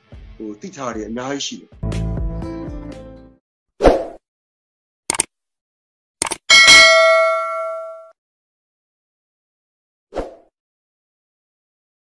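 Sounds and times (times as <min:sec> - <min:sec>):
bell chime ringing: 0:06.5 - 0:08.1.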